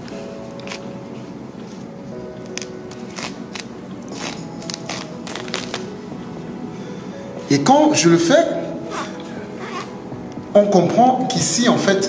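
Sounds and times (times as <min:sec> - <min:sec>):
faint background music: 0:00.0 - 0:12.0
plastic layers crackling and tearing: 0:02.5 - 0:06.0.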